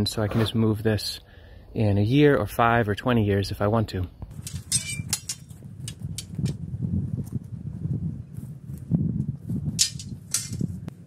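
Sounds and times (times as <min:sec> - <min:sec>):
footsteps crunching through dry grass: 0:05.4 - 0:10.8.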